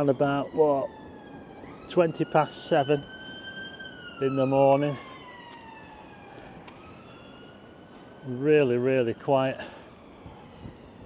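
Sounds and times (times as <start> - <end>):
faint ambulance siren wailing: 0.0 - 11.0.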